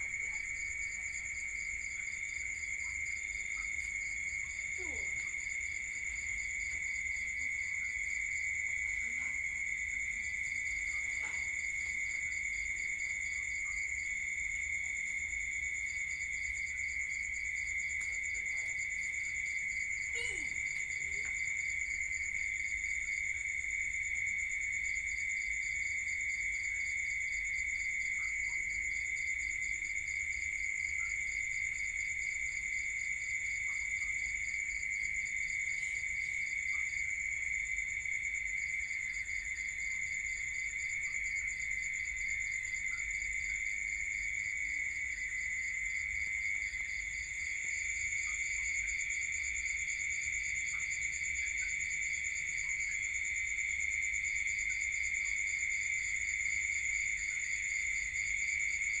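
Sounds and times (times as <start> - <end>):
insects trilling: 0.0 - 59.0.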